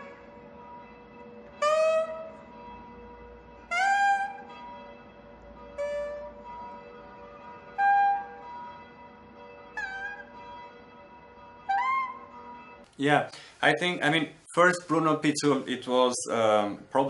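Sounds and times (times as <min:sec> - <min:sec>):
faint steady drone: 0:00.0 - 0:17.0
saxophone playing held notes: 0:01.6 - 0:02.4.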